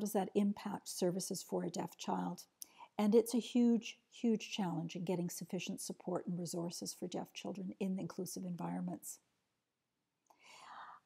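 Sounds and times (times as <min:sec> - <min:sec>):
woman breathing in softly: 0:10.3 - 0:11.0.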